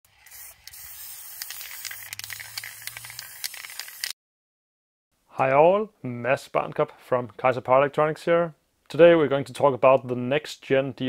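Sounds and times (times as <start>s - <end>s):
aerosol spray can hissing: 0.1s - 4.2s.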